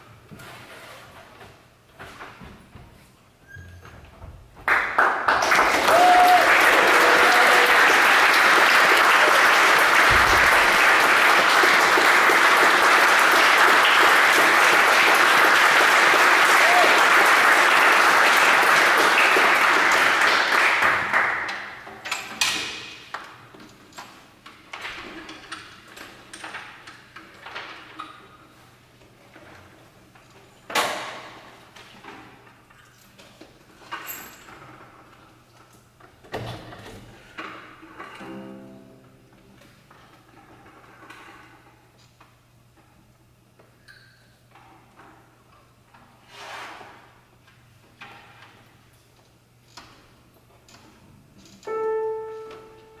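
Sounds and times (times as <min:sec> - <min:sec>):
cello scrapes and swishes: 0:46.2 - 0:47.0.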